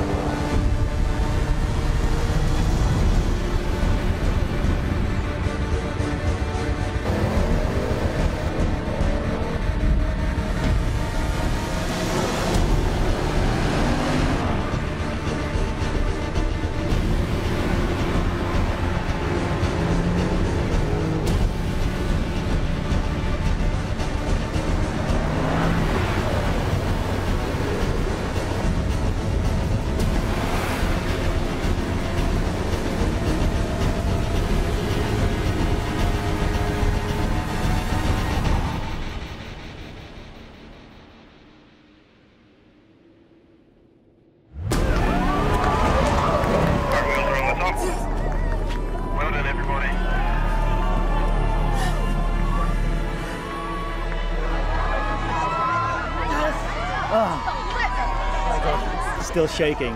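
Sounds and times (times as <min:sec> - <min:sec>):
dramatic background music: 0:00.0 - 0:59.9
vehicle low drone: 0:00.0 - 0:59.9.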